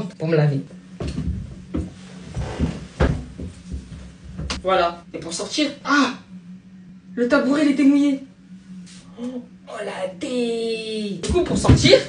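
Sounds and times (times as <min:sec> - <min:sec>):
body thumping against bathtub: 0:01.0 - 0:04.6, 0:11.2 - 0:12.0.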